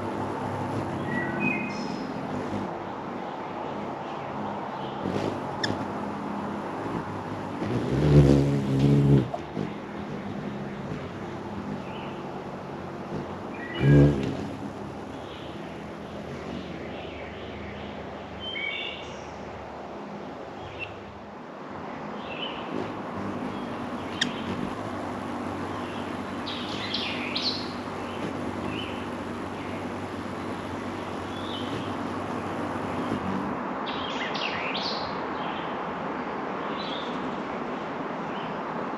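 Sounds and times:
birds chirping: 0.0s - 19.4s, 22.0s - 35.8s.

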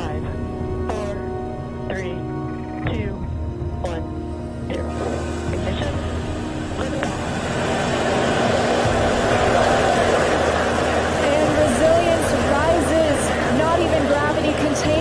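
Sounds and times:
rocket engines roaring: 0.0s - 15.0s.

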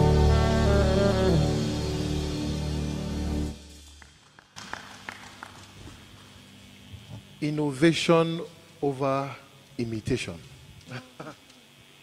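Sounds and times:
saxophone with backing band: 0.0s - 2.7s.

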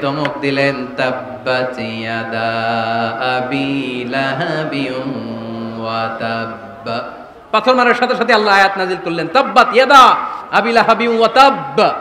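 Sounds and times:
man chanting into microphones: 0.0s - 12.0s.

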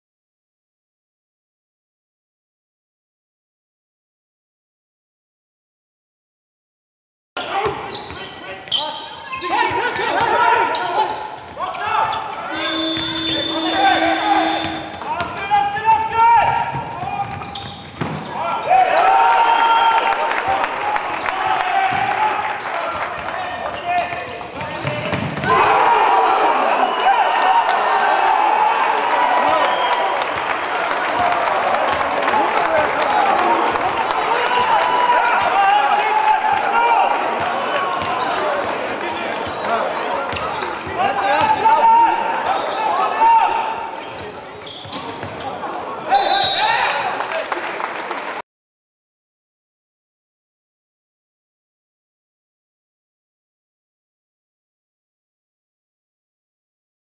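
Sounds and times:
voices: 7.4s - 17.7s
ball bouncing on wooden court: 16.5s - 18.3s, 24.5s - 25.6s.

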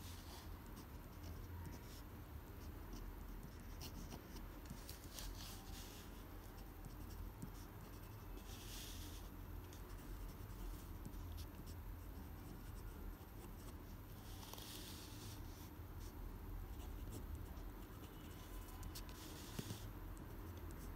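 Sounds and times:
faint low hum: 0.0s - 20.9s
pen nib scratching paper: 0.0s - 20.9s.

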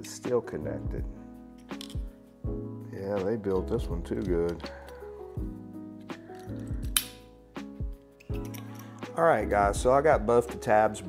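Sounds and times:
background music with bass pulse: 0.6s - 2.9s, 3.7s - 10.7s
pliers snapping metal tab: 6.1s - 7.3s.

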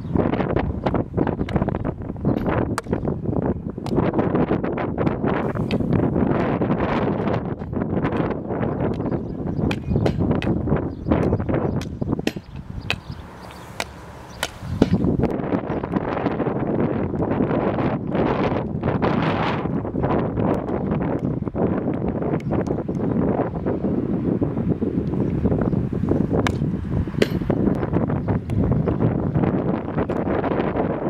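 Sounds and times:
wind buffeting microphone: 0.0s - 31.0s
hockey stick striking ball: 7.2s - 10.6s, 11.2s - 15.1s.

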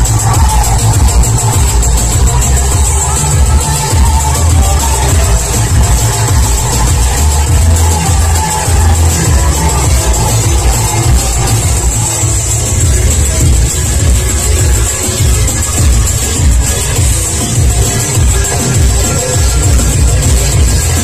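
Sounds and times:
loud music with heavy bass beat: 0.0s - 21.0s.

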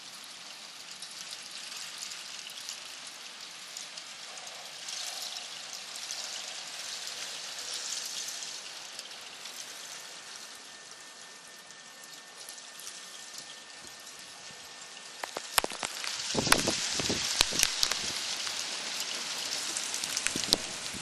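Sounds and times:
soft hail falling: 0.0s - 21.0s.

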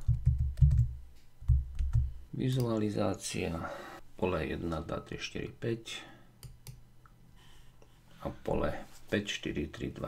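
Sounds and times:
typing on computer keyboard: 0.0s - 2.1s.

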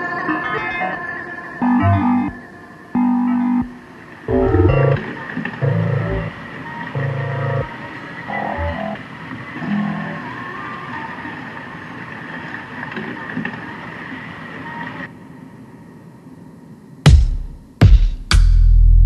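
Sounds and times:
noisy drone with thin high tone: 0.0s - 12.5s
short blocky synthesized tones: 1.6s - 2.4s, 3.0s - 9.0s.

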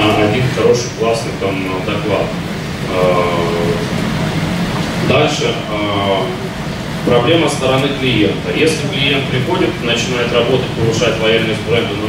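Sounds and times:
man saying uh into a microphone: 0.0s - 3.9s, 5.0s - 12.0s
low room rumble: 0.0s - 12.0s.

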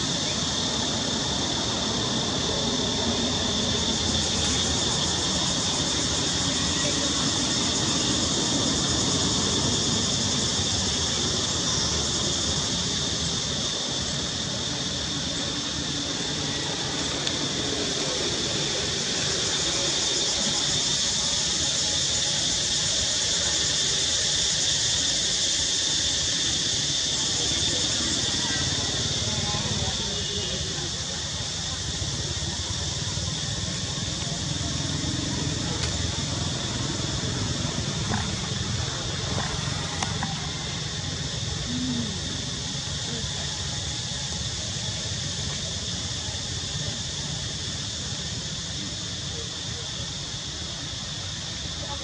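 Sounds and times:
cicadas buzzing: 0.0s - 52.0s.

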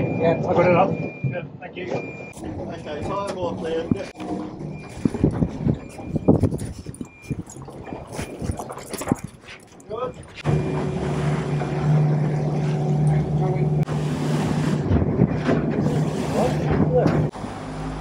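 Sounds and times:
outboard motors droning: 2.3s - 18.0s
water rushing past hull: 7.1s - 18.0s.

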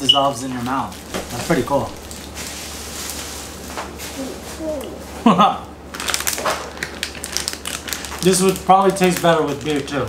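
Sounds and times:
plastic snack bag crinkling: 0.2s - 3.6s, 5.9s - 10.0s.

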